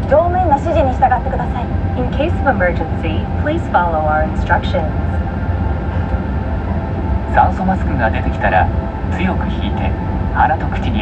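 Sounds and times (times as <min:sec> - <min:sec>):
airliner cabin rumble: 0:00.0 - 0:11.0.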